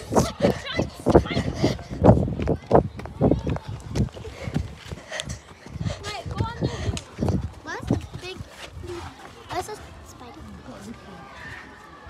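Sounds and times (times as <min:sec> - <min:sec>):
voices: 0:00.0 - 0:12.0
footsteps running on tarmac: 0:00.3 - 0:10.0.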